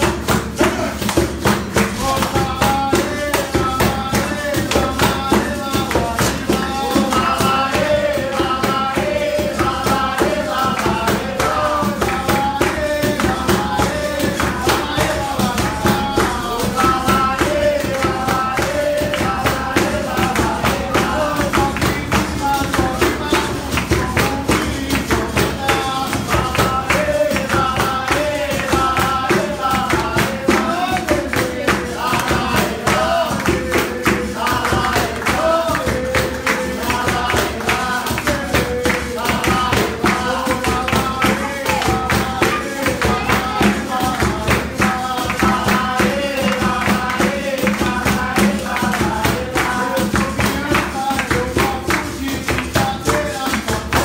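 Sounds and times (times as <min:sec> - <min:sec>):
people singing: 0:00.0 - 0:54.0
steady percussion: 0:00.0 - 0:54.0
tambourine jingles: 0:00.0 - 0:54.0.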